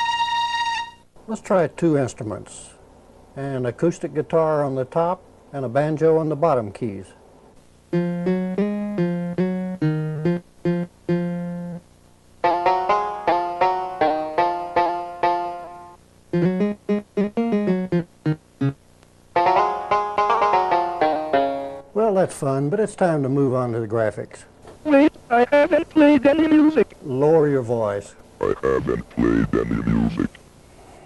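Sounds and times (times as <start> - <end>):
plucked guitar and banjo notes: 19.4 - 21.9.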